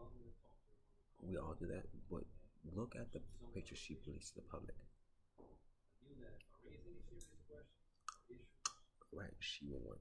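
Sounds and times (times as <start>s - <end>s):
man speaking faintly: 0.0s - 4.9s, 6.0s - 10.0s.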